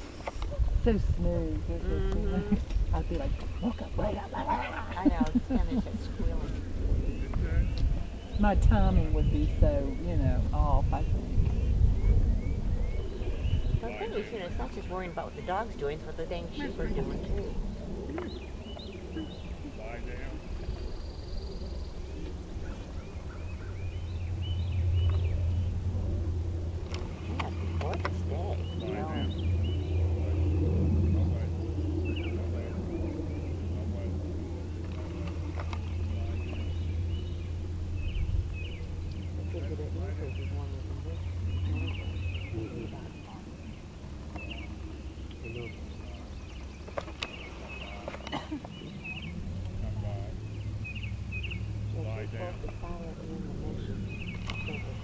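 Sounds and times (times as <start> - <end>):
songbird chirps: 0.0 - 55.0
wind rumble on microphone: 0.0 - 55.0.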